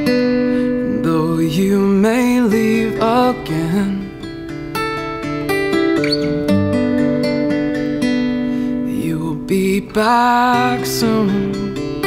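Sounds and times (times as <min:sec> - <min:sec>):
fingerpicked acoustic guitar: 0:00.0 - 0:12.0.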